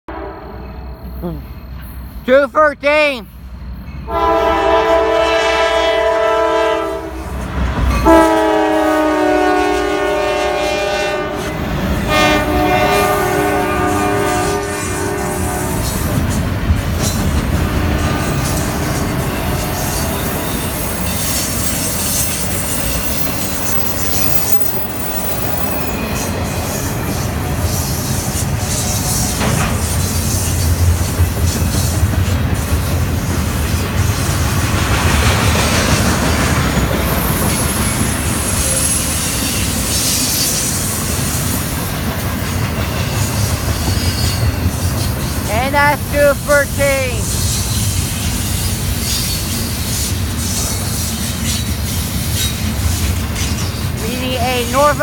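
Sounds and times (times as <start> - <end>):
train air horn blasts: 0.1 - 0.9, 4.1 - 7.3, 8.0 - 16.1
train wheels clacking on rail: 15.6 - 45.5, 47.2 - 54.0.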